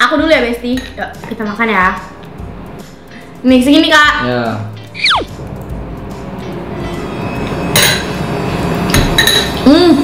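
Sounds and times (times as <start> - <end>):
soft background music: 0.0 - 10.0
descending whistle sound effect: 4.9 - 5.4.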